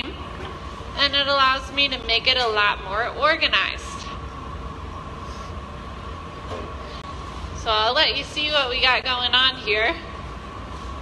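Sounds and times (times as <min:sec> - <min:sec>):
gas furnace and blowers roaring: 0:00.0 - 0:11.0.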